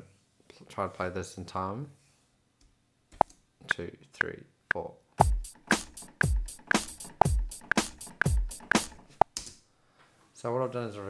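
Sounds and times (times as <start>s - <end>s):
deep kick drum: 5.2s - 8.8s
metronome clicks: 5.2s - 9.0s
snare and hi-hat hits: 5.2s - 9.4s.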